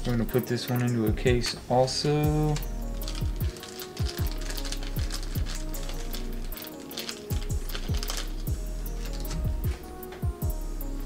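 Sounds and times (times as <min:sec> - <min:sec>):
hi-hat ticks: 0:00.0 - 0:10.6
deep bass kicks: 0:09.4 - 0:09.8.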